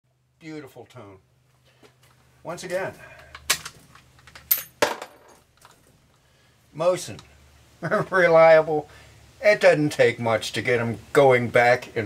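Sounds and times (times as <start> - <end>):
rifle bolt metallic clacks: 3.2 - 4.7.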